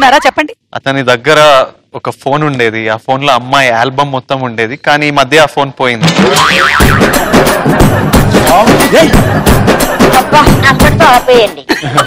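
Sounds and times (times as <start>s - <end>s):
music with steady drum beat: 6.0s - 12.0s
cartoon boing: 6.1s - 7.2s.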